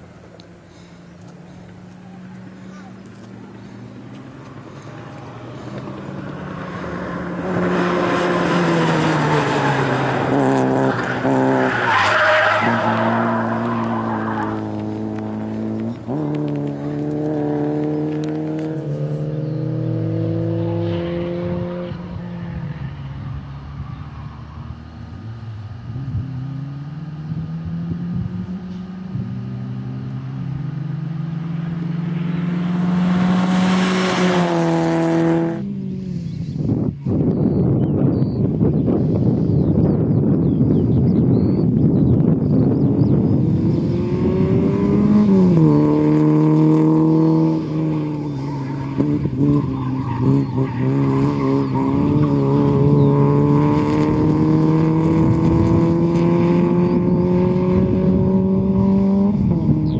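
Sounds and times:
car engine revving hard: 4.7 - 22.0, 26.0 - 36.1, 43.2 - 59.9
tyre squeal: 10.7 - 14.9, 47.5 - 53.1.

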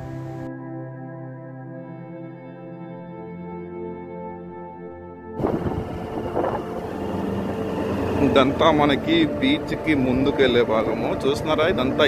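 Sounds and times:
motorcycle engine: 5.4 - 10.1
road and wind noise: 5.4 - 12.0.

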